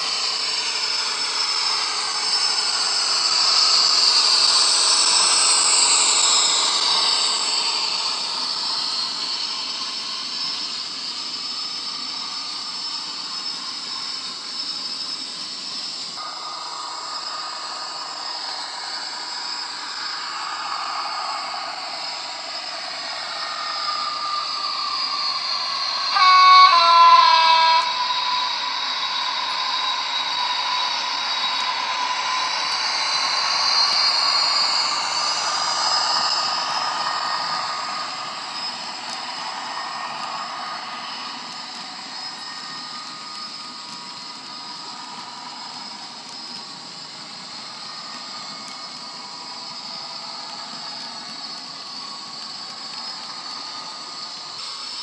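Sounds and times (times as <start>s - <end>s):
loud two-tone horn: 26.1s - 28.1s.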